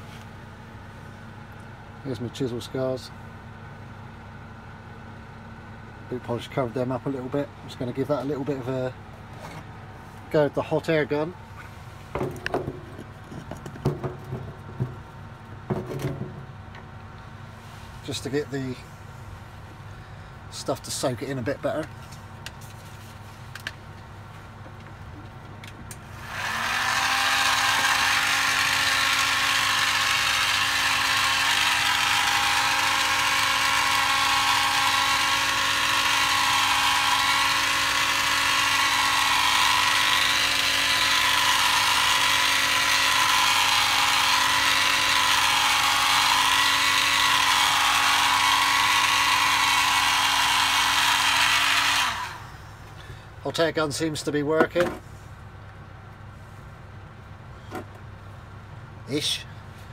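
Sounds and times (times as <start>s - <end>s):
hot air gun fan whirring: 0.0s - 56.6s.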